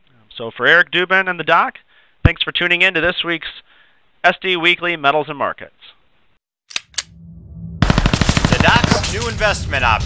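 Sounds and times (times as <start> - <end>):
sharp click: 6.7 - 7.1
low rumble: 7.0 - 10.0
rapid automatic gunfire: 7.8 - 9.6.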